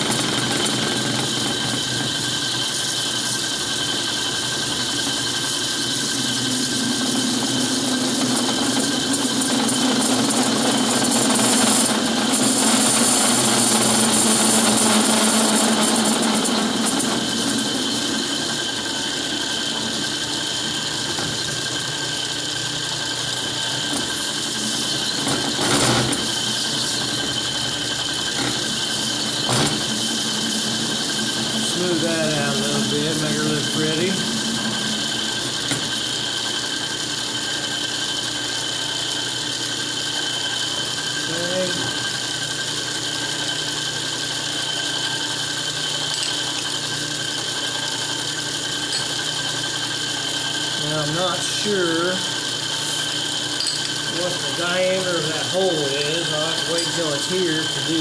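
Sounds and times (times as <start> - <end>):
metal lathe gear whine: 0.0 - 58.0.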